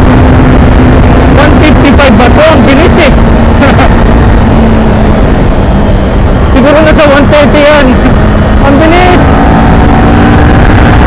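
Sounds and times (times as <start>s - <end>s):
motorcycle engine cruising: 0.0s - 11.0s
wind rush on microphone: 0.0s - 11.0s.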